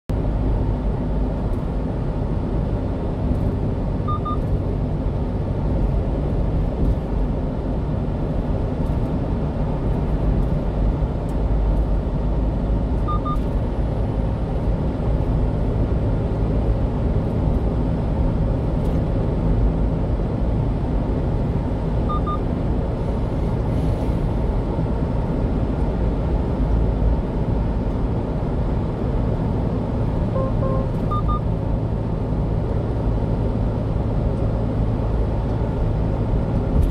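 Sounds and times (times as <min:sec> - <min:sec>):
truck road and engine noise: 0:00.1 - 0:36.9
high double beep: 0:04.0 - 0:04.5, 0:13.0 - 0:13.5, 0:22.1 - 0:22.4, 0:30.3 - 0:31.5.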